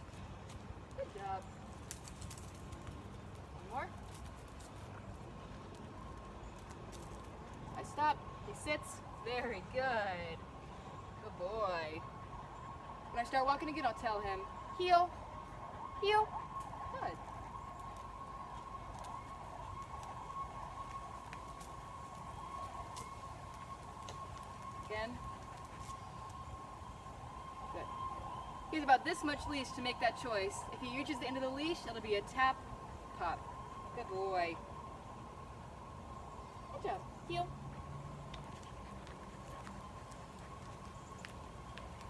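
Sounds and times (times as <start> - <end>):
footsteps on asphalt: 0.0 - 7.8, 16.4 - 26.9, 37.7 - 42.0
low outdoor rumble: 0.0 - 42.0
woman speaking: 1.0 - 1.5, 7.8 - 10.4, 13.2 - 15.1, 16.0 - 16.3, 24.8 - 25.2, 28.7 - 32.6, 33.2 - 33.4, 34.0 - 34.6, 36.7 - 37.5.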